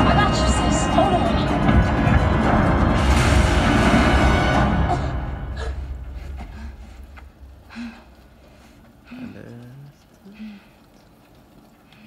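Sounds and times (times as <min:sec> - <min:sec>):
low rumble: 0:00.0 - 0:09.2
film score: 0:00.0 - 0:10.2
faint vocal sounds: 0:09.0 - 0:10.8.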